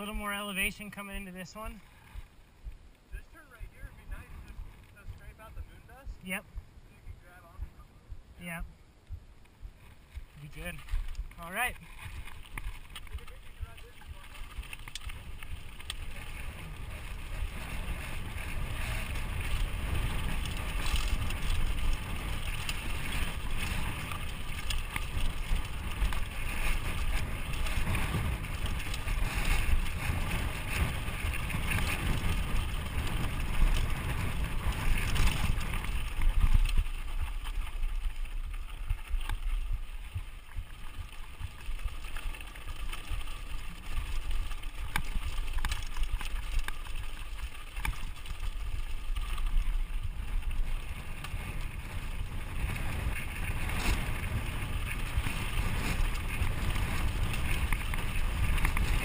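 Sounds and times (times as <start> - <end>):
bike tyres rolling on dirt: 0.0 - 59.0
wind buffeting microphone: 0.0 - 59.0
bike clicks and rattles: 10.8 - 59.0.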